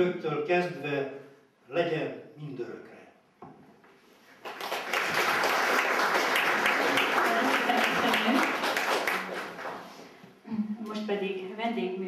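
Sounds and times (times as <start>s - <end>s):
audience applauding: 4.4s - 10.2s.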